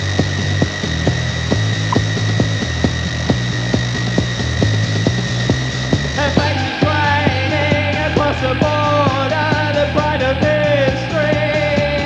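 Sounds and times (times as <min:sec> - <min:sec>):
deep repeating bass line: 0:00.0 - 0:12.0
fast drum beat: 0:00.0 - 0:12.0
high synthesizer drone: 0:06.2 - 0:12.0.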